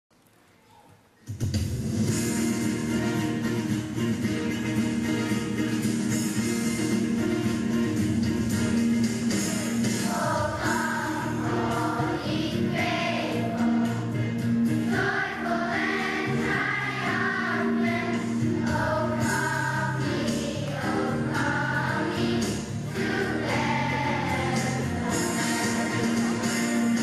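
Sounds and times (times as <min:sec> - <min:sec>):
instrumental accompaniment: 0:01.4 - 0:27.0
children's choir singing: 0:09.4 - 0:27.0.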